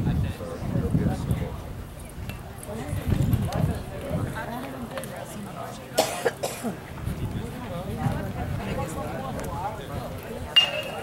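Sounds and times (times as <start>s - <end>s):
faint background chatter: 0.0s - 11.0s
person coughing: 6.0s - 6.8s.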